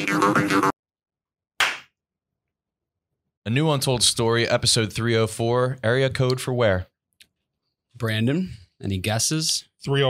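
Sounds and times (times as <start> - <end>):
sharp slap-like smack: 1.6 - 2.0.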